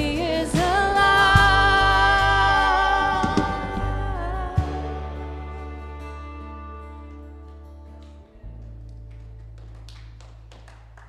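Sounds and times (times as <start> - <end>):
band holding low note: 0.0 - 9.5.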